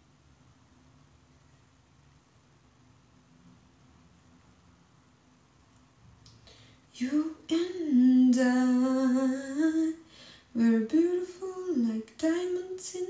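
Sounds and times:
woman singing wordless tune: 0:06.9 - 0:13.0.

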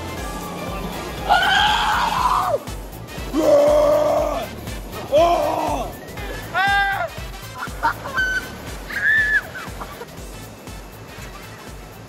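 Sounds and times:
background music with steady beat: 0:00.0 - 0:12.0
water splashing: 0:00.0 - 0:12.0
person laughing: 0:05.2 - 0:10.1.

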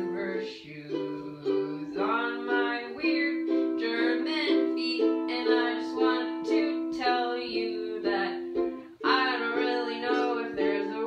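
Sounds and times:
string instrument strumming chords: 0:00.0 - 0:11.0.

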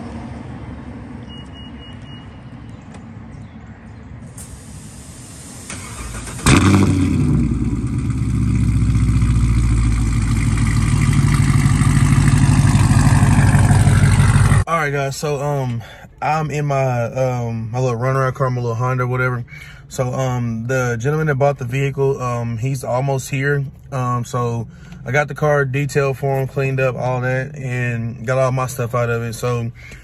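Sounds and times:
car engine starting and idling: 0:04.2 - 0:15.9, 0:16.5 - 0:30.0.

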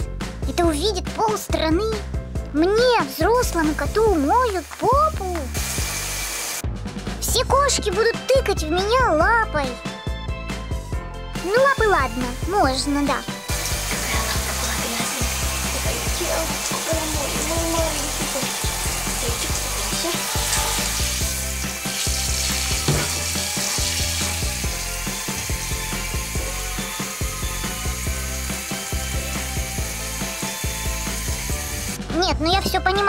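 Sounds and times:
shower spraying water: 0:02.8 - 0:06.7, 0:13.5 - 0:32.0.

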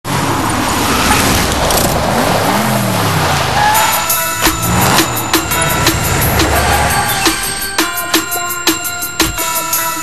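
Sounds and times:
road and wind noise: 0:00.0 - 0:07.7
car engine revving: 0:00.1 - 0:07.6.

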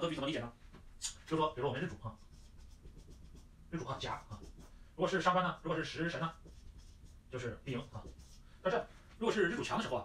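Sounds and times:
man speaking: 0:00.0 - 0:02.3, 0:03.7 - 0:06.5, 0:07.3 - 0:10.0
marker writing on whiteboard: 0:01.0 - 0:10.0.

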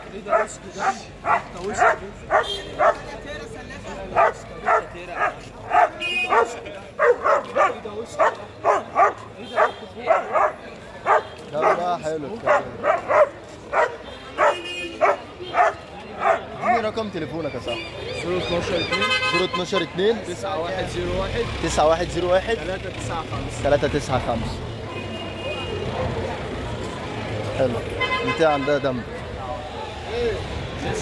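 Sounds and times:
dog barking: 0:00.2 - 0:03.1, 0:04.1 - 0:16.8.

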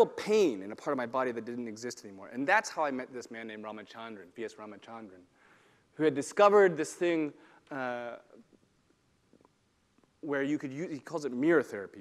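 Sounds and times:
man saying uh: 0:06.0 - 0:08.3, 0:10.2 - 0:12.0.

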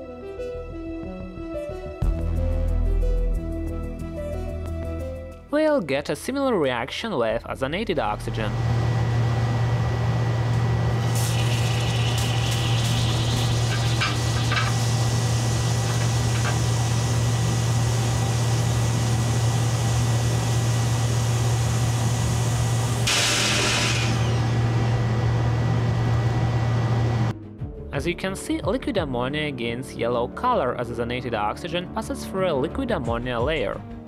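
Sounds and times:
ozone generator humming: 0:08.0 - 0:27.3
gas hissing: 0:08.2 - 0:27.3
gas bubbling through liquid: 0:10.7 - 0:24.6.

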